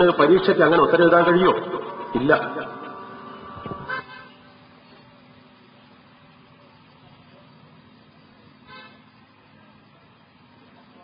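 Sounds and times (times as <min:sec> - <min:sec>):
steady low hum: 0:00.0 - 0:11.0
vehicle horn toot: 0:01.8 - 0:04.5, 0:08.6 - 0:09.1.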